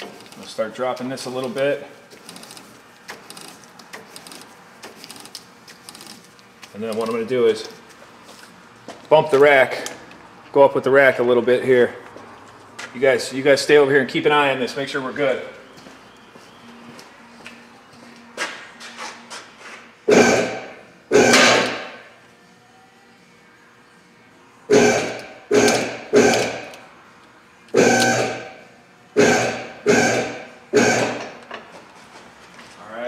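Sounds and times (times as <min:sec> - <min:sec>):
hydraulic pump motor bursts: 0:20.1 - 0:22.0, 0:24.7 - 0:26.8, 0:27.7 - 0:28.6, 0:29.2 - 0:31.4.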